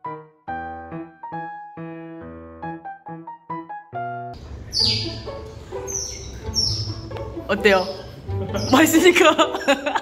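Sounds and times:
otters chirping high squeaks: 0:04.6 - 0:08.9.

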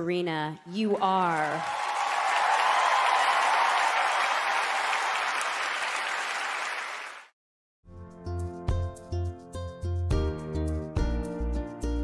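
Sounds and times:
audience applauding and cheering: 0:01.0 - 0:07.4.

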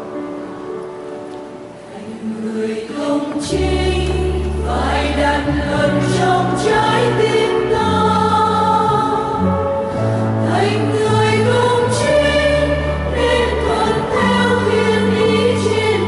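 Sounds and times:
mixed choir singing a hymn: 0:01.9 - 0:16.0.

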